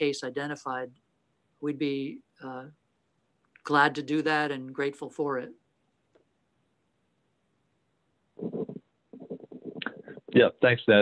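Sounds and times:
person speaking: 8.4 - 11.0.

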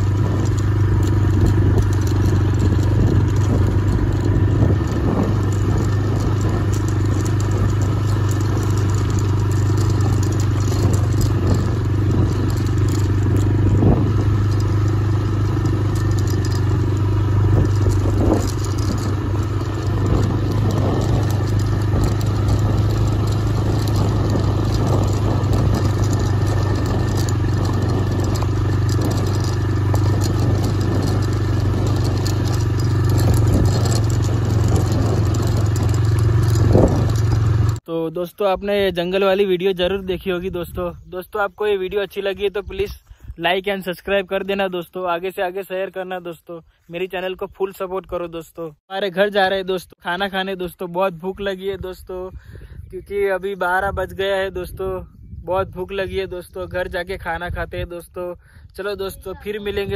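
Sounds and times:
rattles and clatter from bumps: 0.0 - 37.8
motorcycle engine cruising: 0.0 - 59.9.

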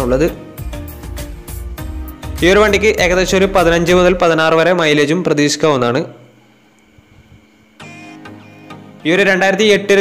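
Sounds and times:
background music: 0.0 - 4.8, 7.7 - 10.0
guitar: 7.0 - 9.8.

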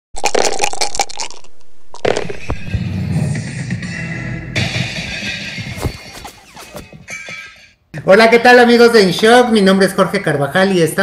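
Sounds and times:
sharp hits: 2.6 - 7.7.

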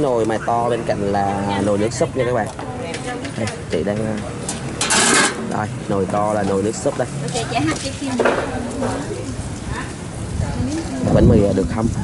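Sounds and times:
metal pots and utensils clinking: 2.9 - 5.5.

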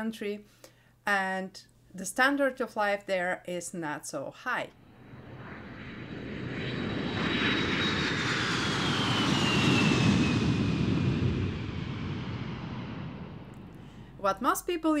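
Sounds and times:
jet airplane passing by: 4.8 - 14.2.

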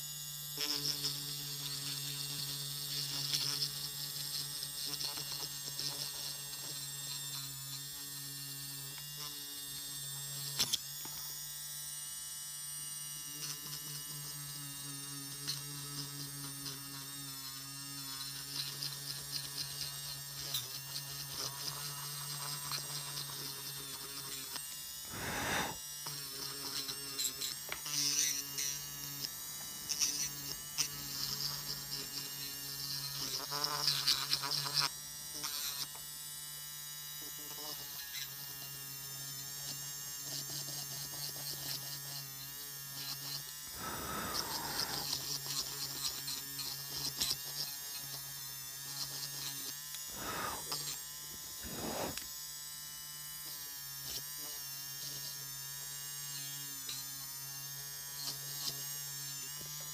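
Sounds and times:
electric nail drill motor hum: 0.0 - 59.9
drill bit grinding nail: 15.2 - 35.9, 39.6 - 52.3
brief rush of noise: 51.6 - 52.2.

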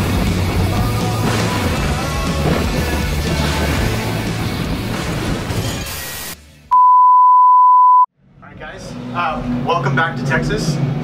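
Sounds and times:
test-tone beep: 6.7 - 8.1.

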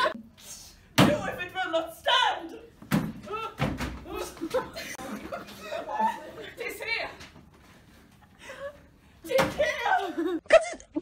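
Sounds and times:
voices talking and laughing: 3.4 - 7.3, 8.2 - 11.0.

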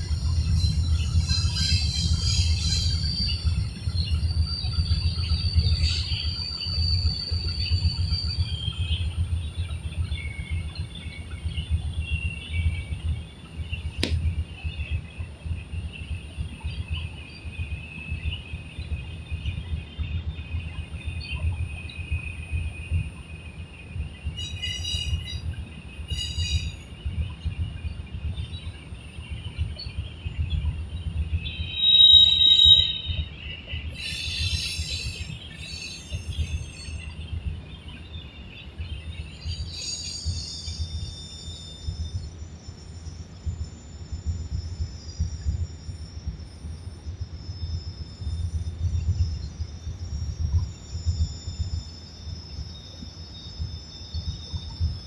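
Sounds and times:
steady low rumble: 0.0 - 31.9.

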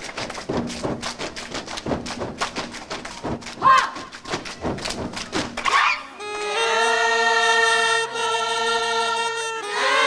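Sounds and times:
folk choir singing: 6.2 - 10.0.

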